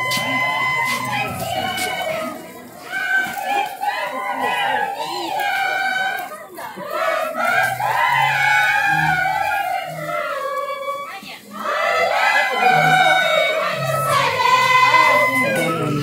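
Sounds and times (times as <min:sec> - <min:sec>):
girls singing together: 0:00.0 - 0:16.0.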